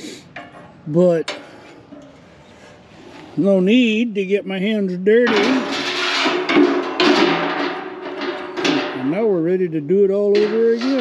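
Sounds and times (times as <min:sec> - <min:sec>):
metal grate scraping and rattling: 0:00.4 - 0:11.0
sharp metal clank: 0:05.3 - 0:09.3, 0:10.3 - 0:11.0.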